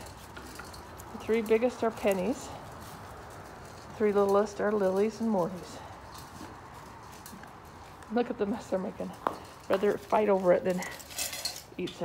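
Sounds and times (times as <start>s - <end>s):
puppies crunching kibble: 0.0s - 11.7s.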